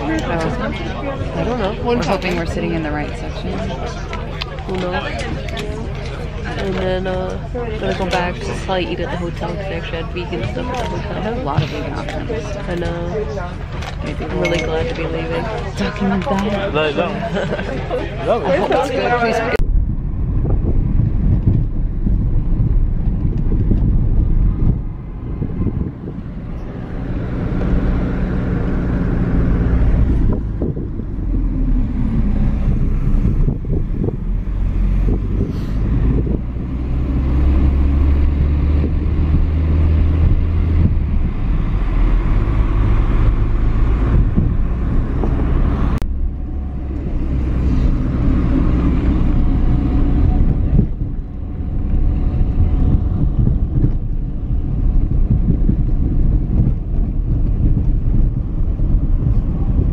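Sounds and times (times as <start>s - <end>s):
car engine: 0.0s - 59.9s
road noise: 0.0s - 59.9s.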